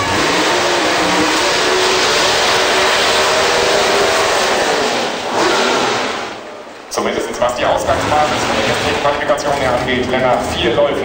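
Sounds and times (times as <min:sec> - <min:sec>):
drag car engine roaring: 0:00.0 - 0:11.0
tyres spinning on tarmac: 0:00.0 - 0:11.0.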